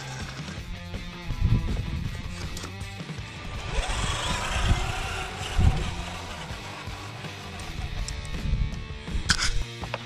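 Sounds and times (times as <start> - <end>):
background music: 0.0 - 10.0
tyres on gravel: 2.3 - 8.8
toy truck motor whining: 2.4 - 8.4.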